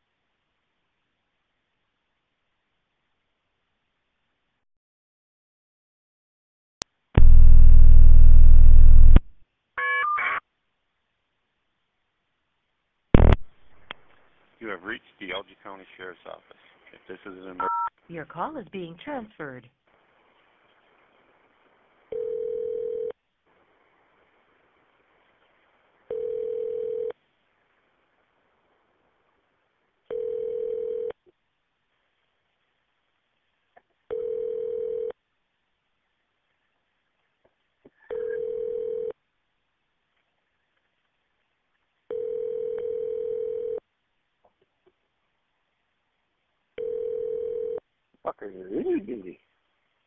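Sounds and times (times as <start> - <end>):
faint phone line hiss: 20.1 - 23.2, 24.0 - 27.6, 30.1 - 31.2, 34.1 - 35.2, 38.0 - 39.2, 42.1 - 43.8, 46.8 - 47.9
telephone ringback tone: 22.1 - 23.1, 26.1 - 27.2, 30.1 - 31.2, 34.1 - 35.1, 38.1 - 39.1, 42.1 - 43.8, 46.8 - 47.8.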